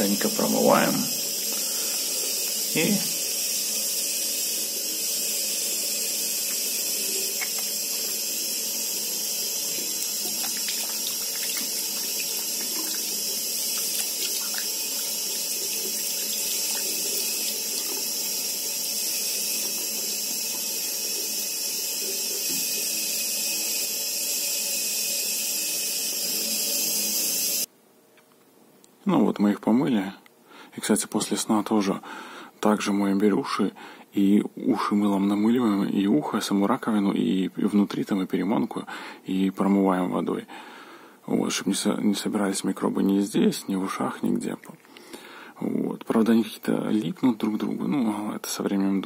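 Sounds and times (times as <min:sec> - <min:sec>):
tap water running into washbasin: 0:00.0 - 0:27.7.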